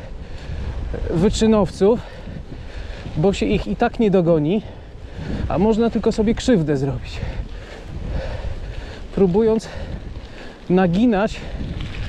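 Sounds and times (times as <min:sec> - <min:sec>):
bike rolling on asphalt: 0:00.0 - 0:12.0
wind rumble on microphone: 0:00.0 - 0:12.0.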